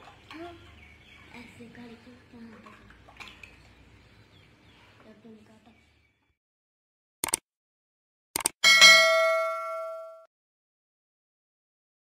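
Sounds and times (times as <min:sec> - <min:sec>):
double click: 0:07.2 - 0:07.4, 0:08.4 - 0:08.6
bright bell ding: 0:08.6 - 0:10.3.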